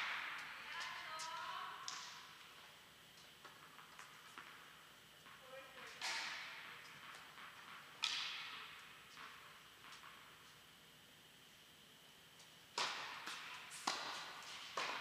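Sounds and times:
tennis ball strikes echoing: 0.0s - 1.3s, 6.0s - 10.2s, 12.7s - 15.0s.

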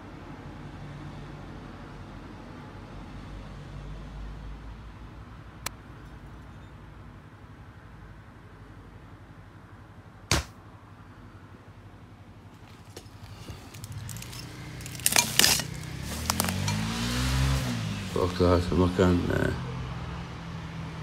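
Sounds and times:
sharp bang: 10.3s - 10.6s
footsteps through undergrowth: 12.6s - 18.4s.

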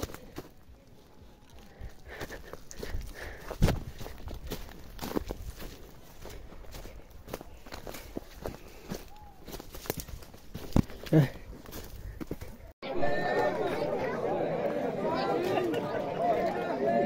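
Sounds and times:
footsteps on dry leaves and twigs: 0.0s - 12.8s.

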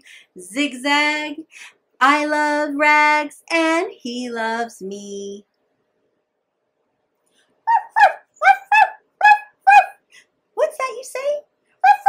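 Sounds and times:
woman imitating dog yips: 7.7s - 10.1s.

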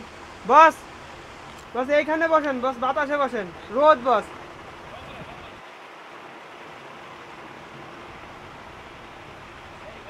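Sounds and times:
outdoor background hiss: 0.0s - 10.0s.

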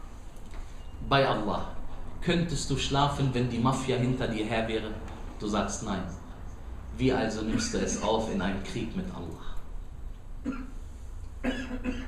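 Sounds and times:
man clearing throat: 7.5s - 8.2s, 10.4s - 10.8s, 11.4s - 12.0s.

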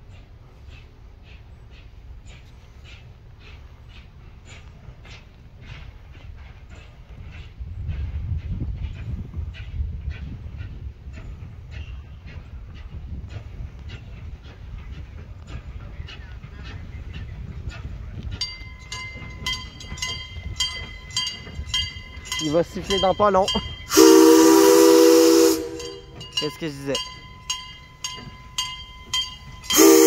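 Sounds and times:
steam locomotive chuffing: 0.0s - 30.0s
bell ringing: 18.4s - 24.0s, 25.7s - 30.0s.

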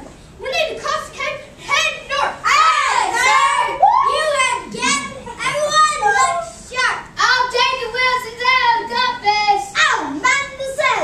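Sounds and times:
children calling out: 2.2s - 6.8s.

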